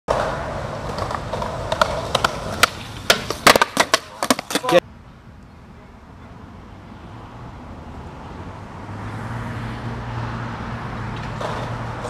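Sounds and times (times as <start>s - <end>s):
skateboard clacks: 0.1s - 4.8s, 11.1s - 12.0s
skateboard wheels rolling on pavement: 0.1s - 4.8s, 5.6s - 12.0s
faint outdoor background noise: 0.1s - 12.0s.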